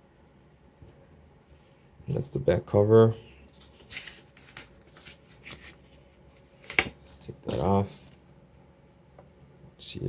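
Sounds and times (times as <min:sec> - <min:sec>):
card rustling against case: 0:03.5 - 0:08.2.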